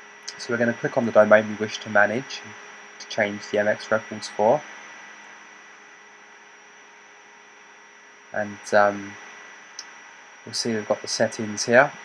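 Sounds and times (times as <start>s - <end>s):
background hiss: 0.0s - 12.0s
faint electrical hum: 0.0s - 12.0s
thin high-pitched whine: 0.0s - 12.0s.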